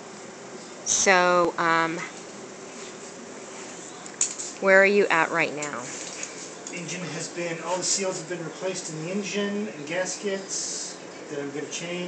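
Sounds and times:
buzzing hum with hiss: 0:00.0 - 0:12.0.

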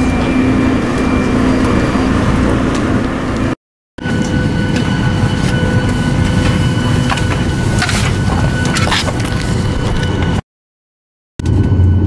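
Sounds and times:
airport terminal rumble: 0:00.0 - 0:10.4
high steady engine whine: 0:00.0 - 0:10.4, 0:11.4 - 0:12.0
jet airliner cabin rumble: 0:00.0 - 0:10.4.

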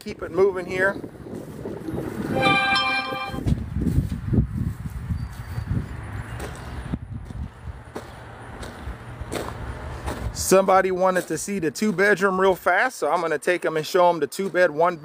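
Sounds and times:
steady pitched tone: 0:02.3 - 0:03.4
footsteps on gravel: 0:06.4 - 0:12.8, 0:14.4 - 0:14.8.

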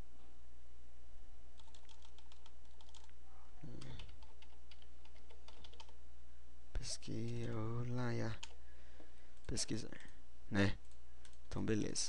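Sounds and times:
steady low hum: 0:00.0 - 0:12.0
computer keyboard typing: 0:01.6 - 0:06.0, 0:07.1 - 0:08.6.

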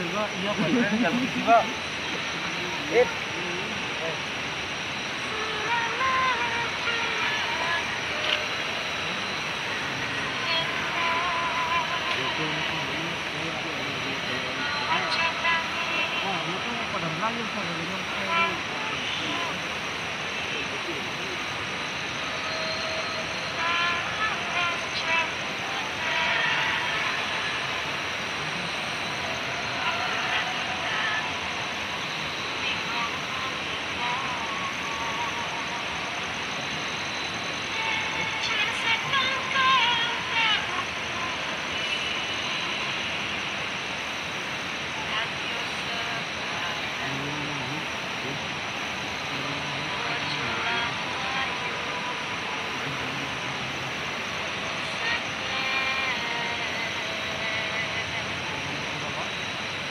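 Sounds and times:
murmuring voices: 0:00.0 - 0:04.5, 0:05.2 - 0:43.2, 0:44.8 - 0:59.9
steady outdoor hiss: 0:00.0 - 0:59.9.

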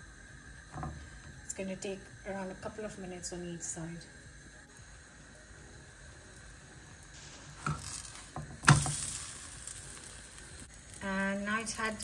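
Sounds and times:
flatbread sizzling in a frying pan: 0:00.0 - 0:12.0.

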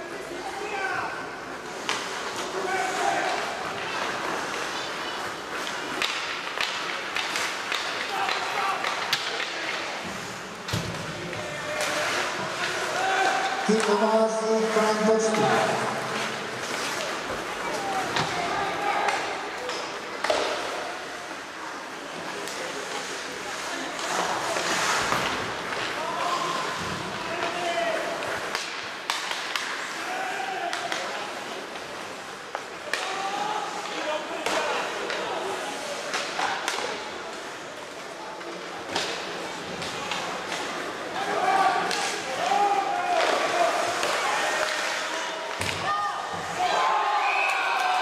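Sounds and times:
rink crowd noise: 0:00.0 - 0:48.0
skate blades scraping ice: 0:01.4 - 0:10.6, 0:14.6 - 0:18.8, 0:19.8 - 0:30.4
sharp clacks of sticks and puck: 0:01.6 - 0:21.4, 0:22.1 - 0:37.6, 0:38.4 - 0:46.6.

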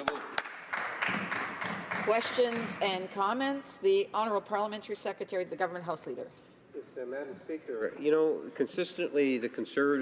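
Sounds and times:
group of people clapping: 0:00.0 - 0:03.1.

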